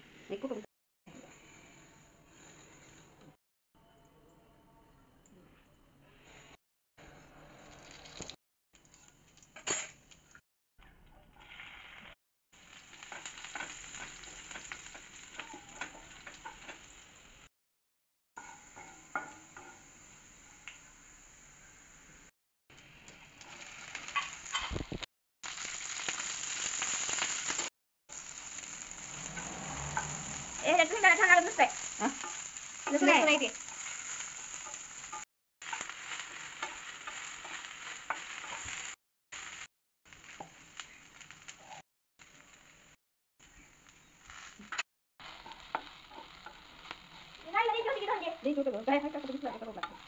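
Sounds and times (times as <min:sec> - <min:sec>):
okra sizzling in hot oil: 0:07.6 - 0:10.4, 0:11.2 - 0:17.5, 0:18.4 - 0:50.0.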